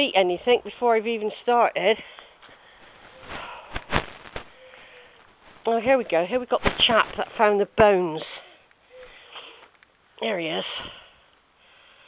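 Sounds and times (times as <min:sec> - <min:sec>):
walking noise: 0:02.4 - 0:07.9.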